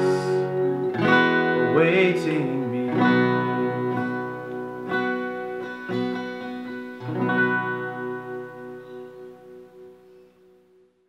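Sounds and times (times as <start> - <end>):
acoustic guitar chord ringing: 0.0 - 10.9.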